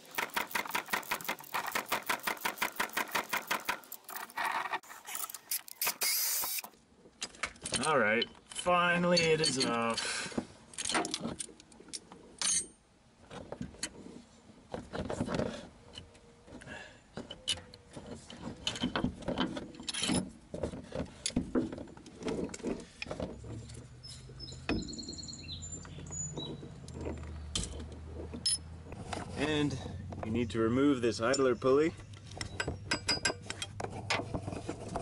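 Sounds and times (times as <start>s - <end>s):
metal tools clinking: 7.6s - 10.0s, 12.4s - 12.8s, 26.9s - 28.7s, 31.1s - 33.8s.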